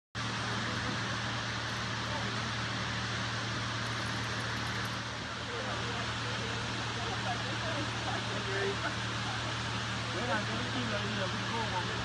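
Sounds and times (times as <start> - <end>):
constant hiss: 0.2 - 12.0
vehicle engine idling: 0.2 - 12.0
faint indistinct voices: 0.3 - 12.0.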